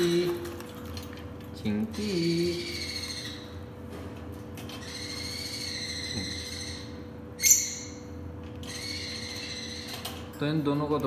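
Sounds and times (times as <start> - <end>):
cockatiels calling: 1.9 - 3.6, 4.7 - 8.0, 8.6 - 10.2
bird screech: 4.8 - 8.0, 8.6 - 10.1.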